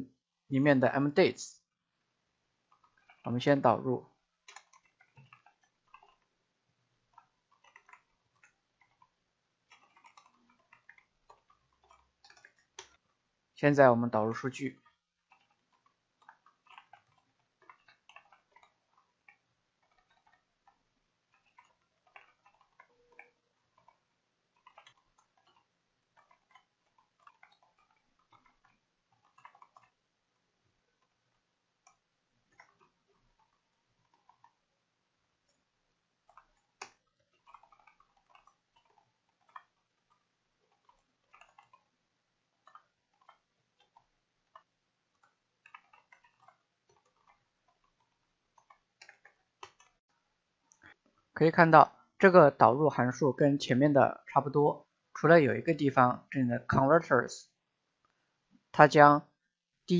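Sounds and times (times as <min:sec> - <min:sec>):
computer keyboard typing: 0:02.6 - 0:51.0.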